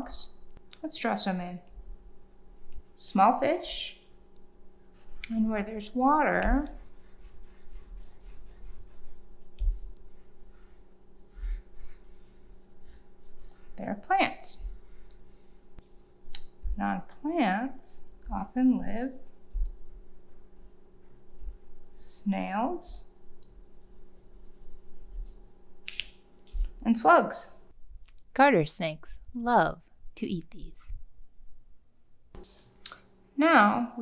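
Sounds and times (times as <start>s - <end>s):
pencil scratching on paper: 4.9s - 13.8s, 14.4s - 15.7s, 19.8s - 21.8s, 23.6s - 25.5s.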